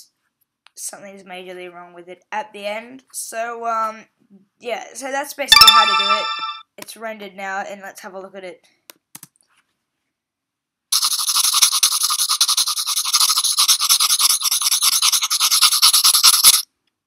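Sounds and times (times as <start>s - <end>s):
pencil scratching on paper: 11.0s - 16.6s.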